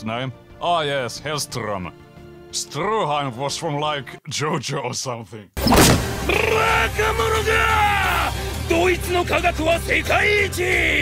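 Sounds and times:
background music: 0.0 - 4.3, 5.6 - 11.0
man yelling: 6.2 - 11.0.

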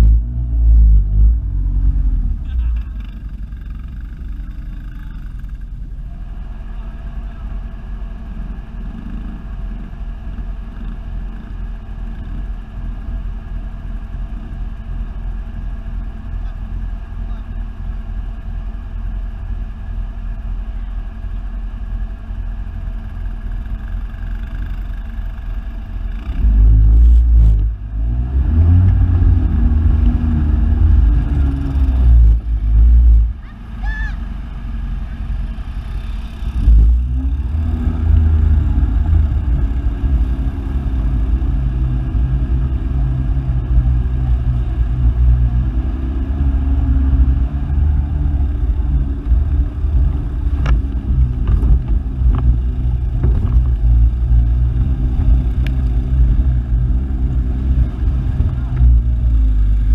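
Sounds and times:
atv engine running and revving: 0.0 - 59.9.

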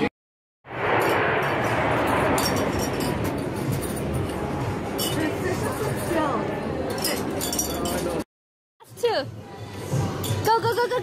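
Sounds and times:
amusement park background noise: 3.9 - 8.2
light clinks: 6.9 - 8.2.

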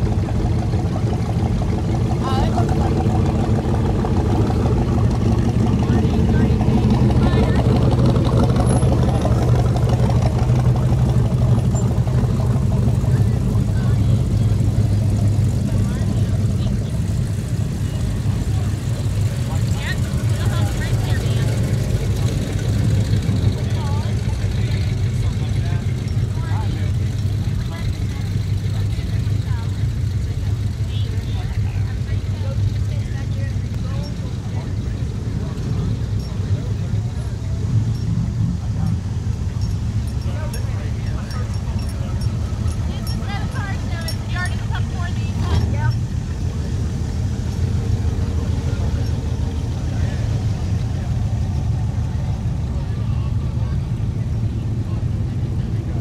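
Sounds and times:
car engines running at low speed: 0.0 - 56.0
people talking: 0.0 - 56.0.

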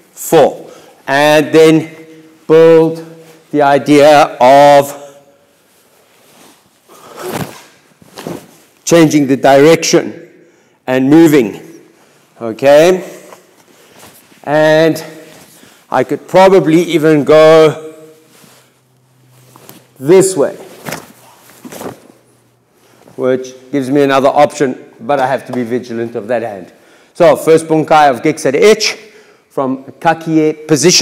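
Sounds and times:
cloth rustling movement: 1.8 - 3.6, 5.4 - 9.0, 13.1 - 15.9, 18.0 - 23.6
cloth sleeves brushing: 5.5 - 8.8, 18.2 - 20.0.

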